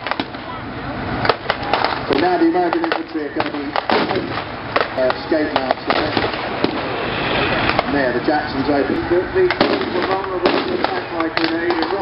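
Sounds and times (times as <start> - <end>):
steady background noise: 0.0 - 12.0
sharp bangs of blank gunfire: 1.3 - 6.9, 9.5 - 12.0.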